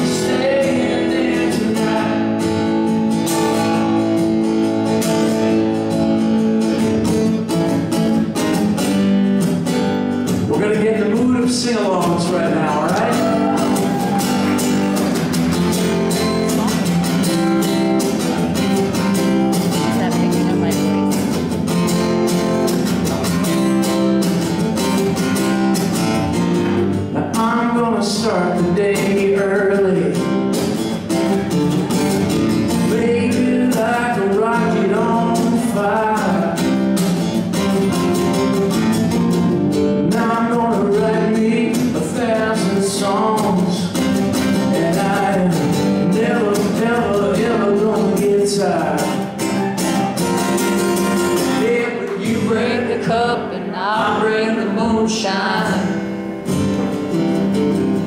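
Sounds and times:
man singing: 0.0 - 4.4, 10.3 - 14.4, 27.0 - 30.6, 32.6 - 36.9, 39.9 - 50.0, 51.2 - 56.2
strummed acoustic guitar: 0.0 - 58.0.

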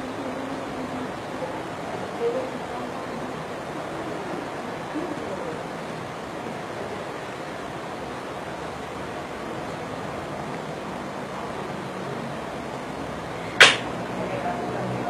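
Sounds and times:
steady background hiss: 0.0 - 15.0
sharp crack: 13.5 - 14.0.

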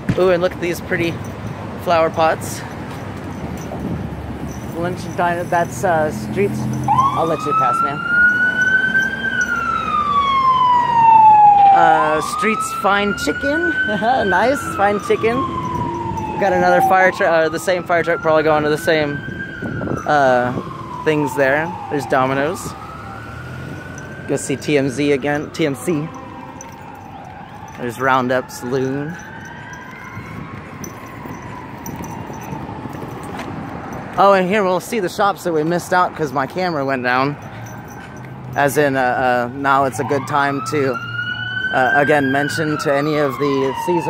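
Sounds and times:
street traffic noise: 0.0 - 44.0
fire engine siren wailing: 3.8 - 36.0, 36.8 - 44.0.

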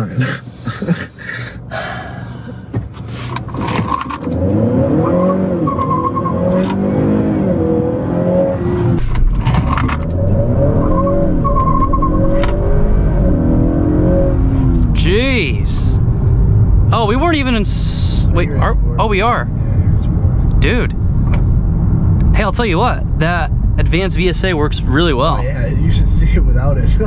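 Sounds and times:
car engine accelerating through gears: 3.5 - 15.1.

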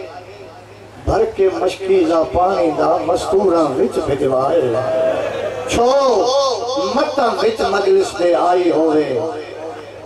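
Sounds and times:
man chanting over loudspeaker: 0.0 - 10.0.

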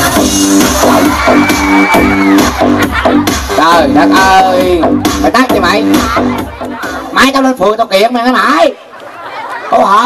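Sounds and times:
loud dance music: 0.0 - 8.8.

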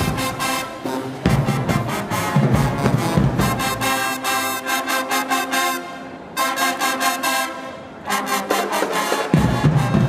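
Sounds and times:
marching band playing: 0.0 - 10.0.

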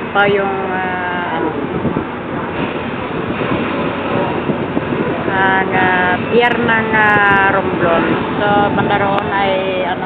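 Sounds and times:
ship engine: 0.0 - 10.0
wind on microphone: 0.0 - 10.0.

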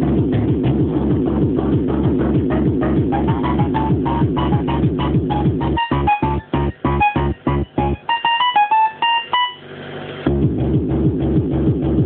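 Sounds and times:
kick and bass beat: 0.0 - 9.6, 10.3 - 12.0
high synth melody: 2.6 - 9.8.

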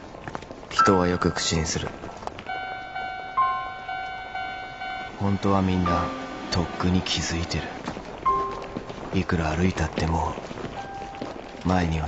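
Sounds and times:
crossing signal beeping: 0.8 - 8.9.

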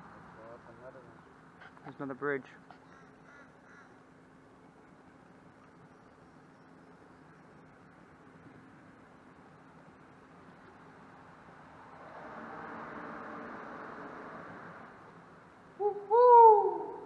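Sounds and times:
bird hooting call: 15.8 - 17.0.

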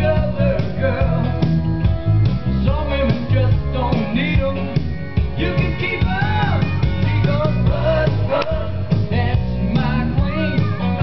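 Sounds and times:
rock and roll song on jukebox: 0.0 - 11.0.

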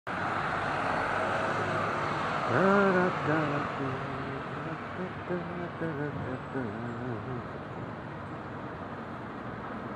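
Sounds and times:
city street traffic: 0.1 - 9.9.

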